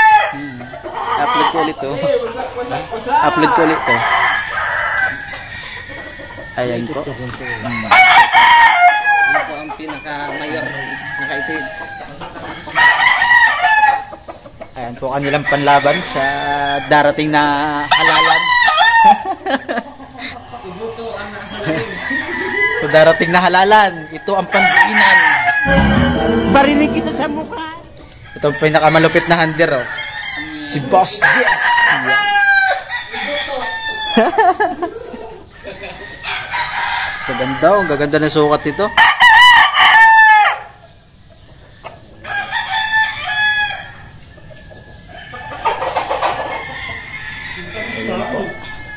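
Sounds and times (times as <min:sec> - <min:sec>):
rooster crowing: 0:10.2 - 0:12.0.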